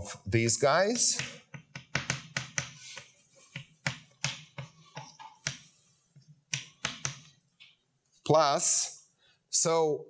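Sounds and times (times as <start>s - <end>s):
chalk writing on a blackboard: 1.2s - 7.4s.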